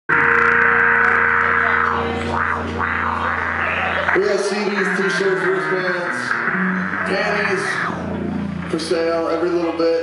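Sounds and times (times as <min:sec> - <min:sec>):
distorted electric guitar drone: 0:00.1 - 0:10.0
low amplifier hum: 0:00.1 - 0:10.0.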